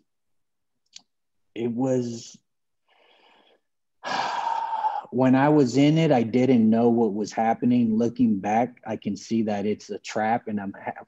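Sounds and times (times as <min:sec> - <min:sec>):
man breathing in deeply: 0:02.8 - 0:05.1.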